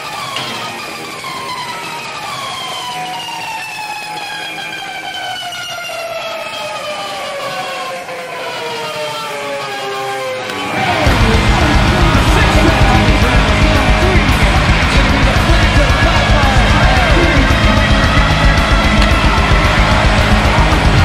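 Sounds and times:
descending sustained music tones: 0:00.0 - 0:21.0.

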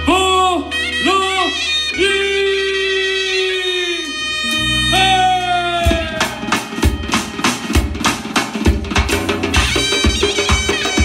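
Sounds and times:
clarinet long bending note: 0:00.0 - 0:07.1
keyboard bass: 0:00.0 - 0:11.0
dhol drum dance beat: 0:05.9 - 0:11.0.

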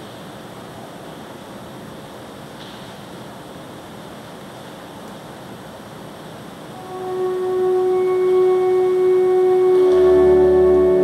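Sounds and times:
room noise hiss: 0:00.0 - 0:11.0
organ music: 0:06.8 - 0:11.0.

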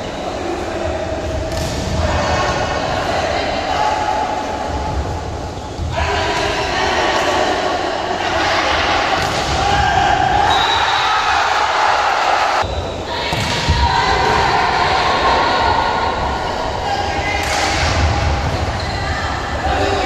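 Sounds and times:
people shouting and calling: 0:05.8 - 0:20.0.

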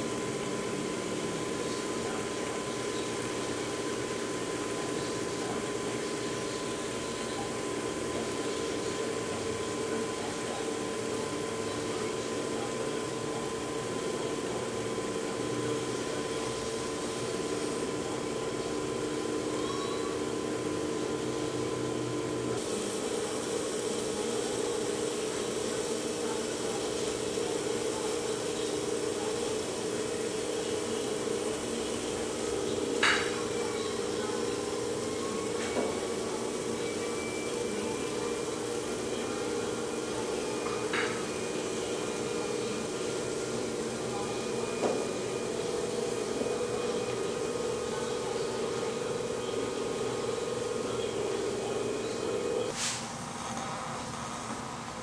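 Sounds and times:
potter's wheel motor hum: 0:00.0 - 0:55.0.

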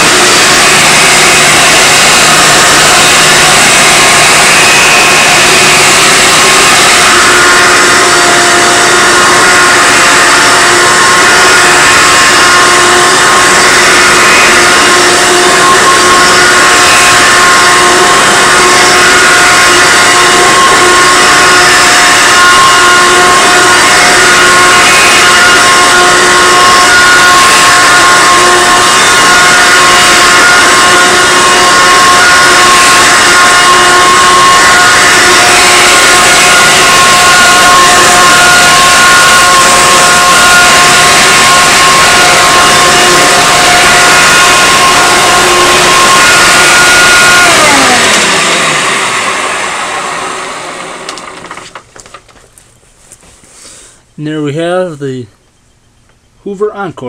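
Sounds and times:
vacuum cleaner motor whine: 0:00.0 - 0:52.2.

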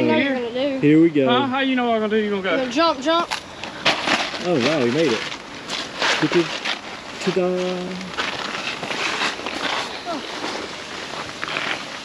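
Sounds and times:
creek water running: 0:01.4 - 0:12.0.

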